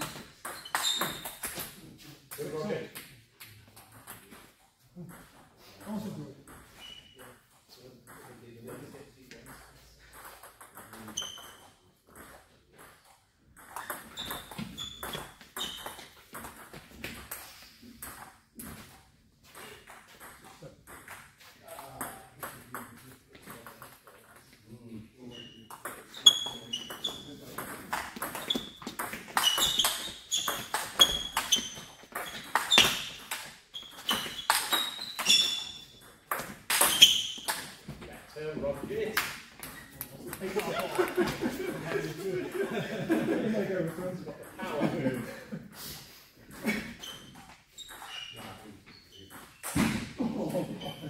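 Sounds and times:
table tennis ball hits: 25.7 - 37.9
voices: 39.9 - 45.5.

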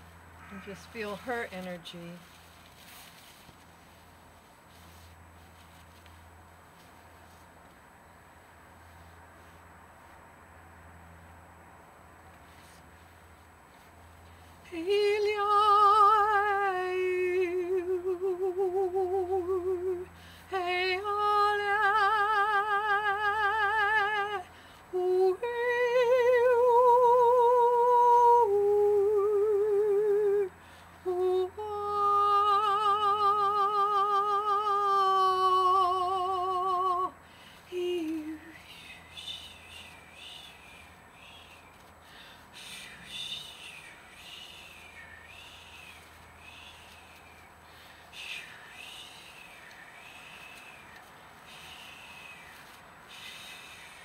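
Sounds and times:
woman singing long held notes: 14.6 - 54.0.

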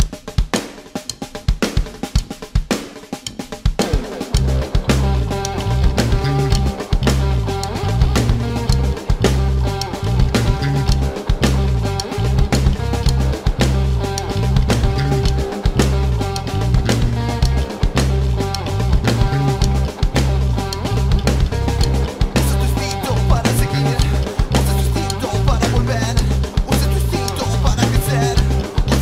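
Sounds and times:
drum kit: 0.0 - 29.0
bass and guitars riff: 3.8 - 29.0.

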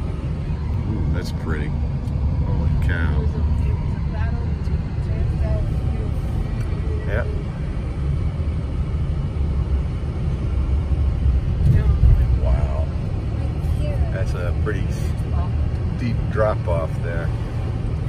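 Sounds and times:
road and engine rumble in car: 0.0 - 18.0.

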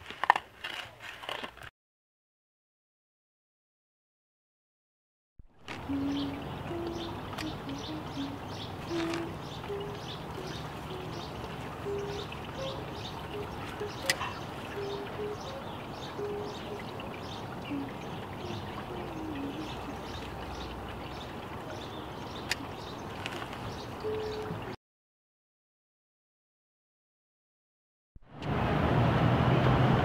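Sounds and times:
soft low hooting notes: 5.6 - 23.2
birds chirping: 5.6 - 24.8.

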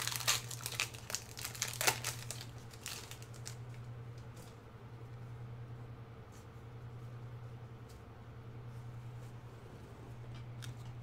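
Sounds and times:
foil wrapper crinkling and tearing: 0.0 - 3.8
steady low hum: 0.0 - 11.0.

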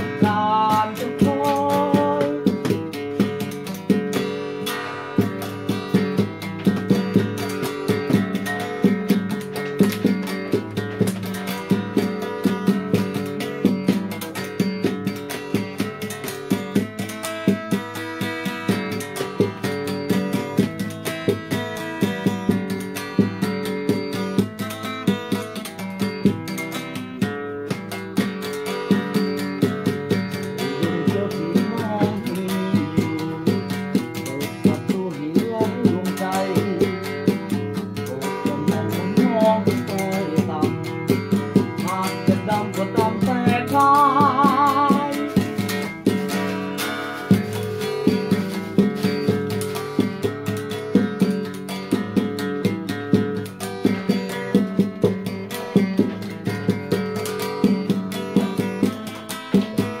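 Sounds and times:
acoustic guitar chords: 0.0 - 60.0.

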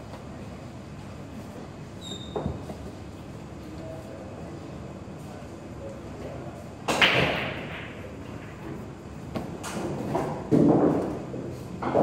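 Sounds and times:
pool balls clacking: 6.8 - 12.0.

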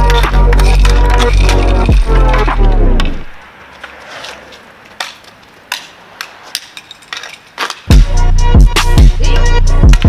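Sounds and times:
background music: 0.0 - 3.3, 7.9 - 10.0
hockey sticks clacking on asphalt: 0.0 - 7.9.

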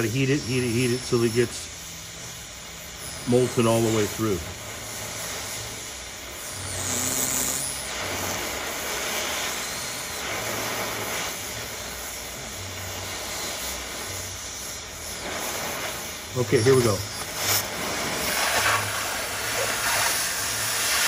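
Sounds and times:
cutting torch flame hissing: 0.0 - 21.0.

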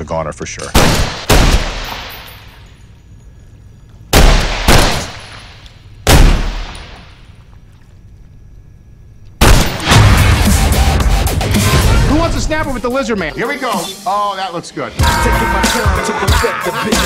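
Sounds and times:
echoing gunshots: 0.7 - 2.6, 4.1 - 7.2, 9.4 - 11.0.

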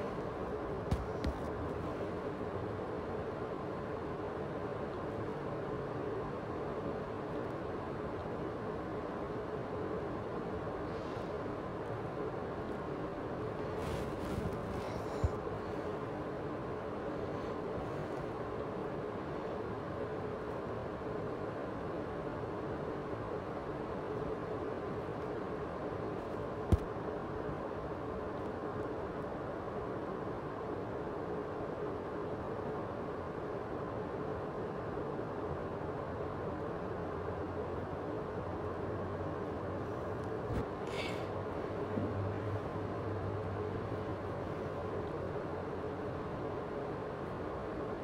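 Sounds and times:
steady hiss and hum: 0.0 - 48.0.

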